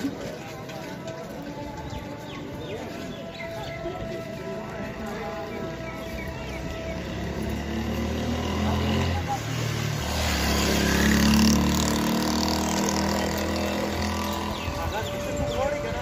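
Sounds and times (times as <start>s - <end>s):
footsteps: 0.0s - 6.8s
crowd chatter: 0.0s - 16.0s.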